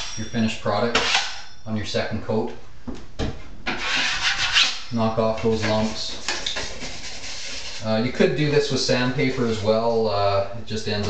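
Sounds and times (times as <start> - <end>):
drywall knife scraping: 1.0 - 1.4, 3.7 - 7.9.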